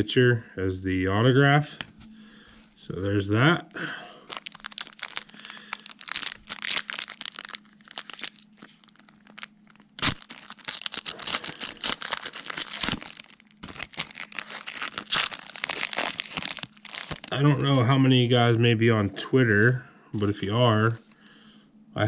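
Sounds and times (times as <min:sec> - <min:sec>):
foil wrapper tearing and crinkling: 0:04.2 - 0:17.8.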